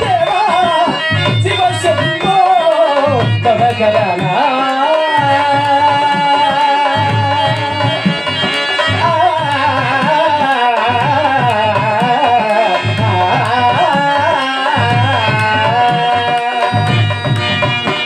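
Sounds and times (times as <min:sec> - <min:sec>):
man singing ornamented melody: 0:00.0 - 0:17.7
tabla strokes: 0:00.0 - 0:18.0.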